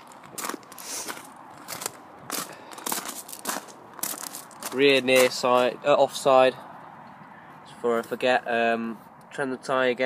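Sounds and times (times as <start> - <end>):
footsteps crunching on gravel: 0.0 - 6.3.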